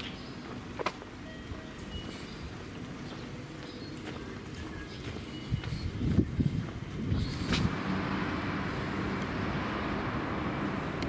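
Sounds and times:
road traffic: 0:00.0 - 0:11.0.

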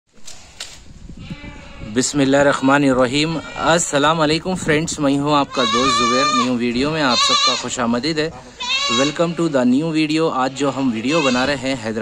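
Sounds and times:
goat bleating: 0:01.2 - 0:04.1, 0:05.4 - 0:12.0.

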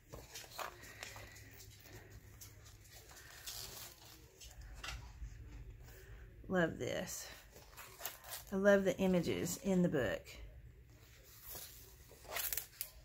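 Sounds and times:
paper pages turning: 0:00.0 - 0:04.8, 0:11.2 - 0:13.0
soft handling sounds: 0:00.0 - 0:06.4, 0:07.0 - 0:09.6, 0:10.7 - 0:13.0.

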